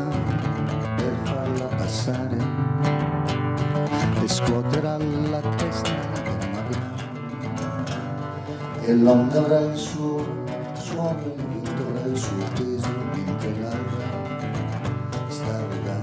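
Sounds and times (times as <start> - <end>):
person singing: 0.0 - 2.8, 3.8 - 16.0
acoustic guitar playing slowly: 0.0 - 16.0.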